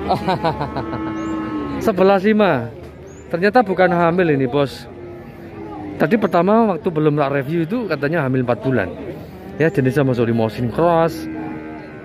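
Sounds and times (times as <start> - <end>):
men talking over one another: 1.8 - 11.4.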